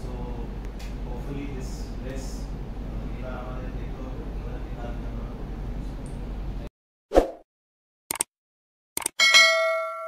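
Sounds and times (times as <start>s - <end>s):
double clicks: 9.0s - 9.2s
bright bell ding: 9.2s - 10.0s.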